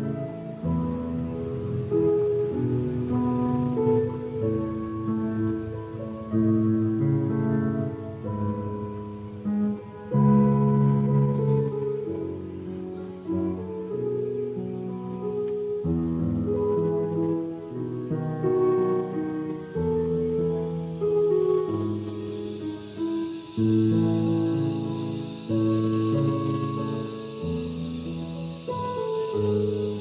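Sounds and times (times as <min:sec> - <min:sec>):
solo piano held notes: 0:00.0 - 0:30.0.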